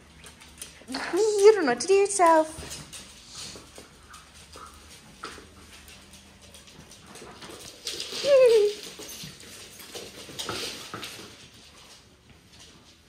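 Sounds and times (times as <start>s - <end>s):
dogs' paws clicking on floor: 0.0s - 13.0s.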